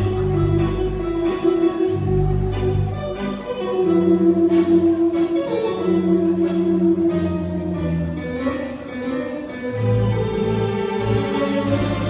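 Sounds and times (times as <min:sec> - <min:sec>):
theatre pipe organ playing a waltz: 0:00.0 - 0:12.0.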